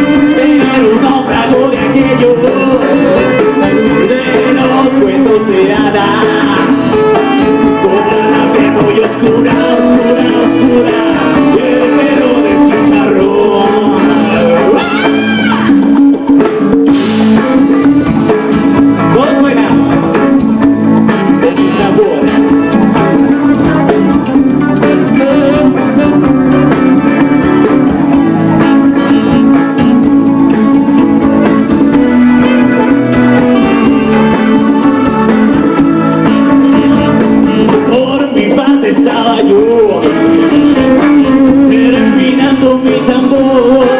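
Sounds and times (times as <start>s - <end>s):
electric guitar: 0.0s - 43.9s
live band music: 0.0s - 43.9s.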